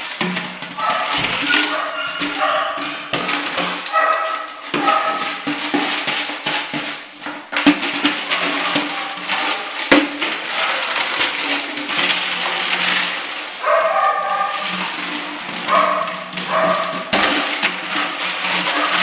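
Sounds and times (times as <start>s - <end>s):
rattle can clattering: 0.0s - 19.0s.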